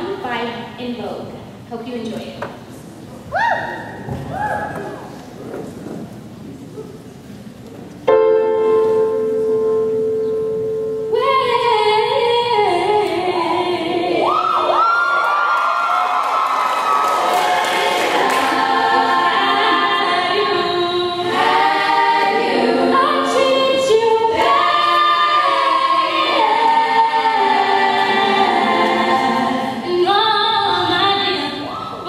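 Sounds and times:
girls singing in harmony: 9.9s - 15.4s, 17.1s - 32.0s.

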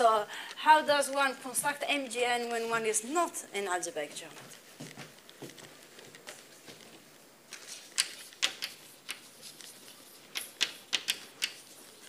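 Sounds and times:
chalk tapping on blackboard: 10.3s - 11.8s.

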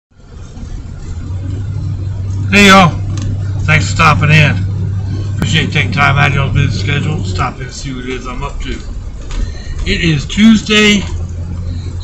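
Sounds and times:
vehicle engine running in cabin: 0.1s - 12.0s.

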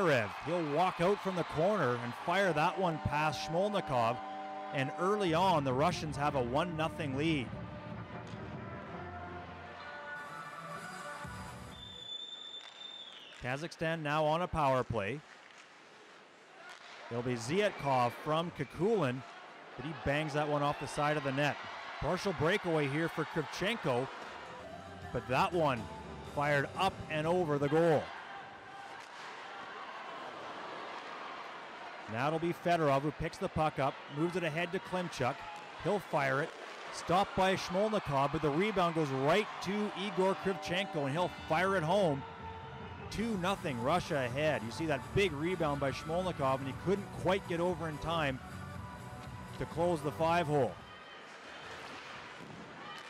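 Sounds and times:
ice hockey arena ambience: 0.0s - 53.0s.

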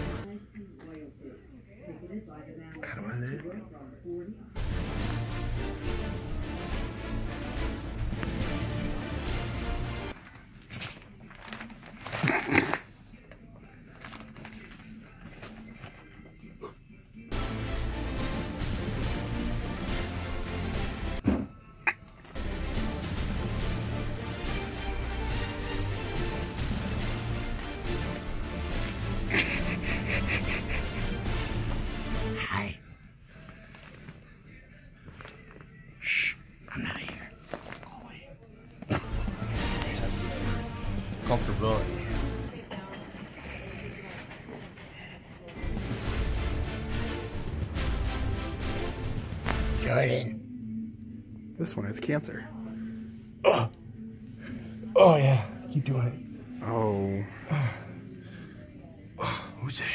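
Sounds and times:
background music: 0.0s - 0.4s, 4.5s - 10.2s, 17.2s - 59.9s
person wordless vocal noise: 53.2s - 55.7s
person growling: 53.4s - 53.9s.

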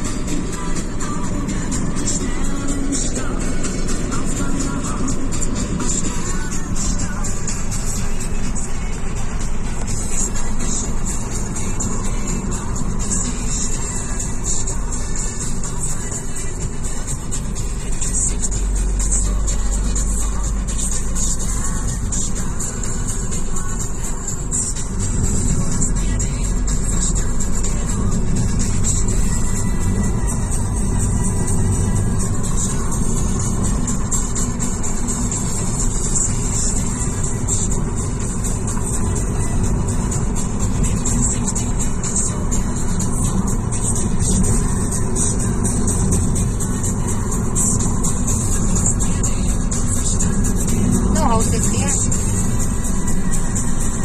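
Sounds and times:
car cabin road and engine noise: 0.0s - 54.0s
music playing: 0.0s - 54.0s.

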